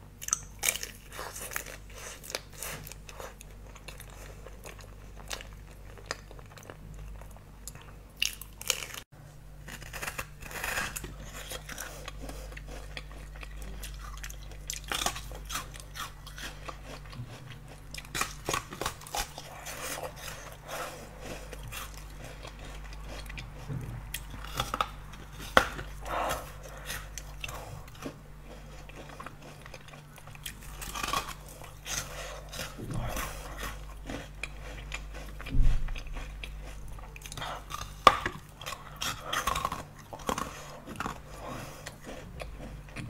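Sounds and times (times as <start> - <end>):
chewing and crunching food: 0.0 - 43.0
faint low hum: 0.0 - 43.0.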